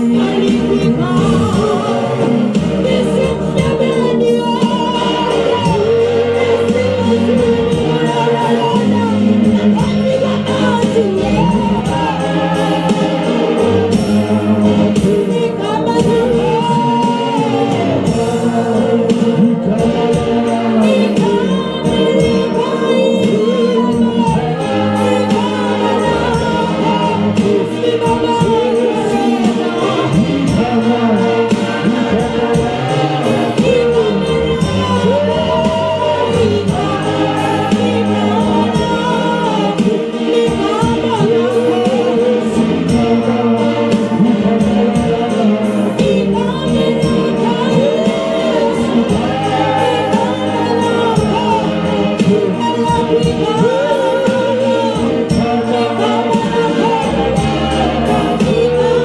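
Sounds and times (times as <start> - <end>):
held accompaniment notes: 0.0 - 59.0
instrumental backing with beat: 0.0 - 59.0
voices singing together: 0.0 - 59.0
woman singing lead: 0.0 - 59.0.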